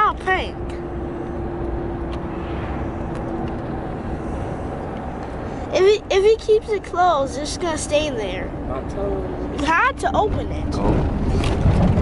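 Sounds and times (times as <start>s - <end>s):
road and engine rumble: 0.0s - 12.0s.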